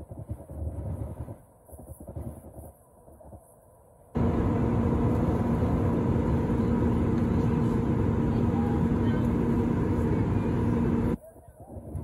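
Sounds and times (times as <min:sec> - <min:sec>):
jet engines and airflow roar: 0:00.0 - 0:12.0
steady low hum: 0:00.0 - 0:12.0.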